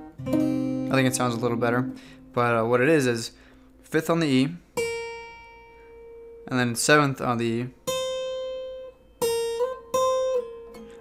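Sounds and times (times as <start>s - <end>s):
acoustic guitar notes picked: 0.0s - 3.9s, 4.6s - 11.0s.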